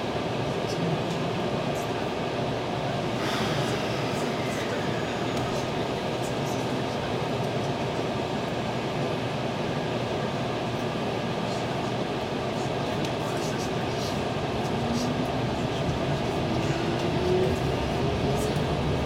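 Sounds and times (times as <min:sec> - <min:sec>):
electric train running noise: 0:02.9 - 0:09.9, 0:13.2 - 0:19.0
train falling tone: 0:03.2 - 0:06.7.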